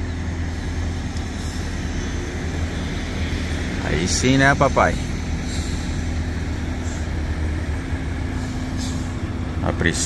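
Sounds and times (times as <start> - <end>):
truck diesel engine running: 0.0 - 10.0.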